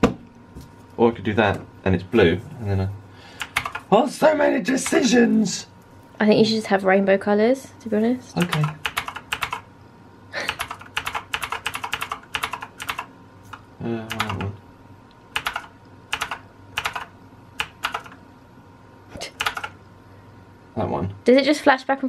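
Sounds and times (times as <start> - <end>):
keyboard keys clicking: 3.4 - 3.8, 8.4 - 9.6, 10.5 - 13.1, 14.1 - 14.5, 15.4 - 18.2, 19.4 - 19.7.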